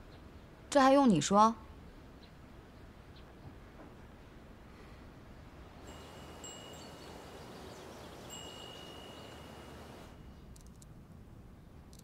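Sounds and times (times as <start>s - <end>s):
soft hiss: 1.7s - 12.0s
faint high chime: 5.8s - 10.4s.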